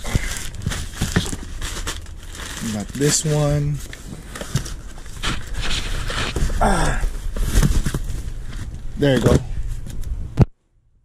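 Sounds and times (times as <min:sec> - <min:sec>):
cardboard parcels knocking and scraping: 0:00.0 - 0:09.9
steady low rumble: 0:00.0 - 0:11.0.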